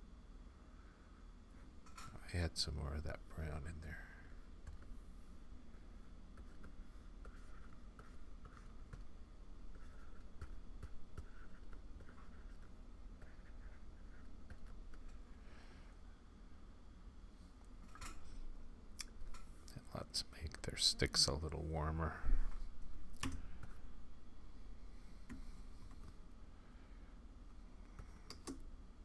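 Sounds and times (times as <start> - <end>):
low steady hum: 0.0 - 29.0
stylus scratching and tapping: 6.3 - 15.2.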